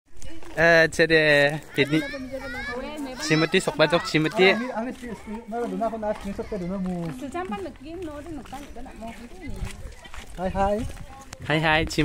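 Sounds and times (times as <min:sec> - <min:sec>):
children's voices: 0:01.5 - 0:11.6.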